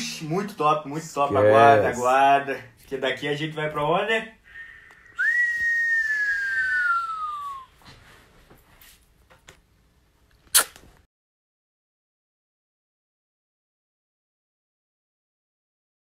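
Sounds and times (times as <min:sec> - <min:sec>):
person whistling: 0:05.1 - 0:07.8
sharp click: 0:10.5 - 0:10.9.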